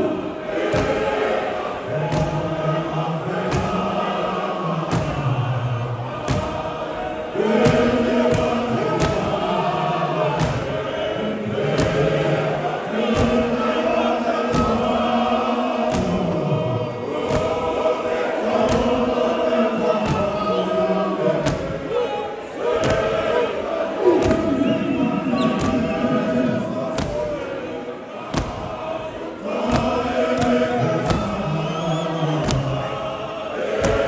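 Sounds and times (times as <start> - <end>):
men's choir singing hymn: 0.0 - 34.0.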